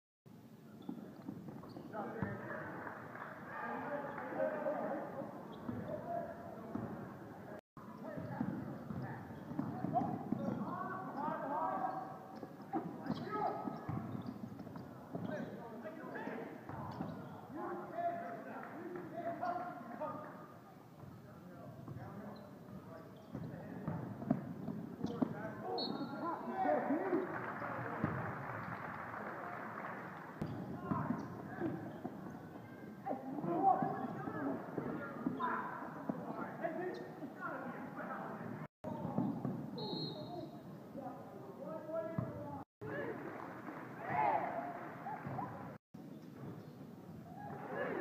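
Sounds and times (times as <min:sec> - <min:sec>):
sneakers squeaking: 0:00.7 - 0:02.5, 0:05.0 - 0:18.3, 0:19.3 - 0:26.5, 0:30.4 - 0:40.8, 0:44.4 - 0:48.0
basketball bouncing: 0:08.1 - 0:10.7, 0:12.5 - 0:15.4, 0:23.2 - 0:25.4, 0:28.0 - 0:28.3, 0:30.4 - 0:32.3
people shouting: 0:47.4 - 0:48.0.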